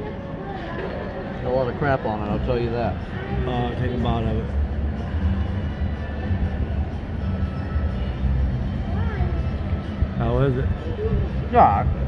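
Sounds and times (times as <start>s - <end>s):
faint chatter of diners: 0.0s - 12.0s.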